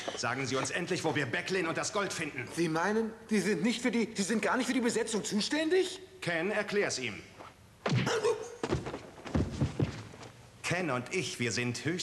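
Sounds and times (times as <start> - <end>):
light knocks and thuds: 8.6 - 10.3.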